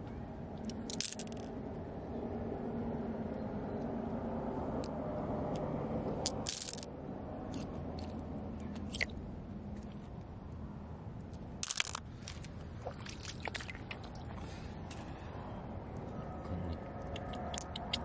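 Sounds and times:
glass pebbles clattering: 0.8s - 1.4s, 6.3s - 6.9s, 11.6s - 12.0s
stream trickling over stones: 11.6s - 14.7s.

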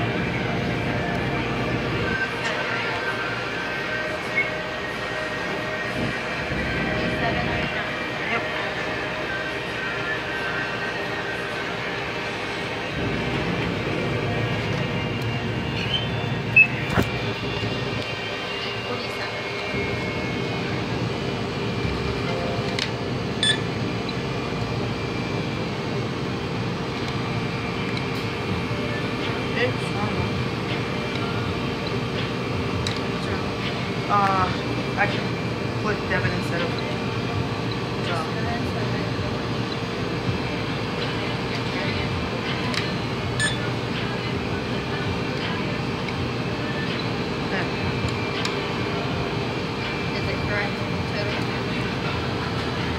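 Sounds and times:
steady hum: 0.0s - 52.9s
people talking in background: 33.0s - 52.9s.

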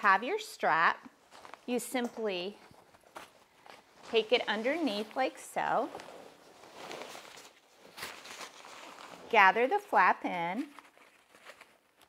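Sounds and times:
fabric rustling: 1.1s - 12.0s.

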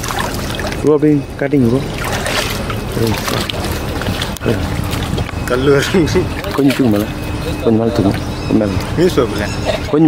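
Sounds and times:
low engine hum: 0.0s - 10.0s
water splashing and sloshing: 0.0s - 10.0s.

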